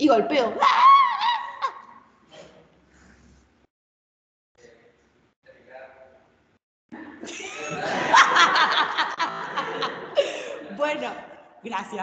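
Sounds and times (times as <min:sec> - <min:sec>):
high-pitched wavering vocal cry: 0:00.5 - 0:02.0.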